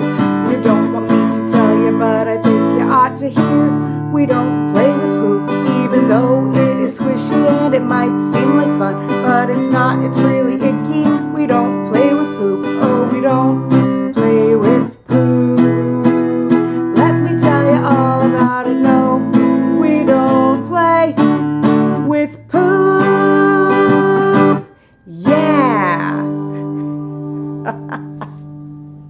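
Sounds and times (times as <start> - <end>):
woman singing: 0.0 - 28.0
strummed acoustic guitar: 0.0 - 29.0
short laugh: 26.4 - 28.5.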